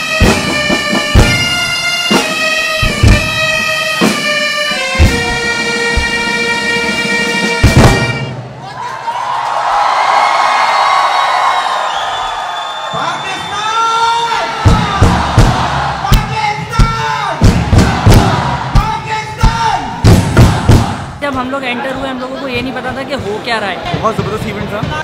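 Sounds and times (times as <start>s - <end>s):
loud drum hits: 0.1s - 4.3s, 5.0s - 6.4s, 7.5s - 8.5s, 14.6s - 21.5s
crowd cheering and shouting: 8.5s - 25.0s.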